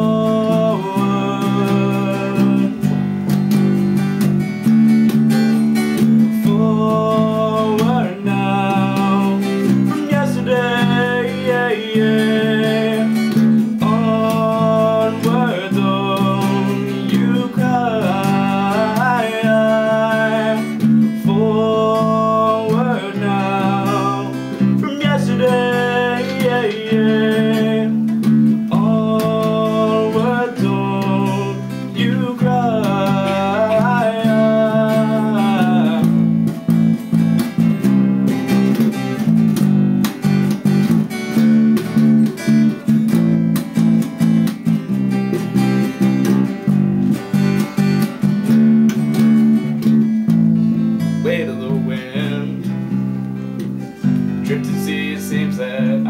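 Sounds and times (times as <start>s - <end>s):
young man singing: 0.0s - 4.0s, 5.9s - 37.8s, 49.6s - 56.0s
electric bass guitar: 0.0s - 56.0s
strummed acoustic guitar: 0.0s - 56.0s.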